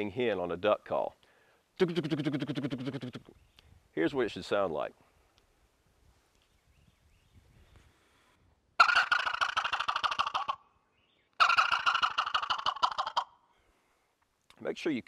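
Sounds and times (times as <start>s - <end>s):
turkey call gobbles: 1.8s - 3.4s, 8.8s - 10.7s, 11.4s - 13.4s.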